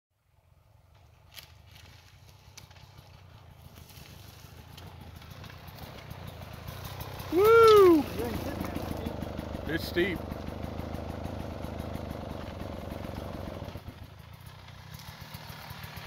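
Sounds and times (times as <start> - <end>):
dirt bike engine: 0.3 - 16.0.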